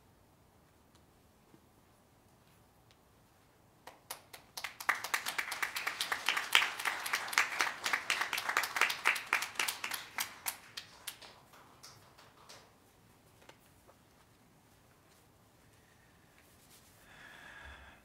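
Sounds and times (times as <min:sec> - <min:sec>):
crowd applauding: 0:04.1 - 0:12.2.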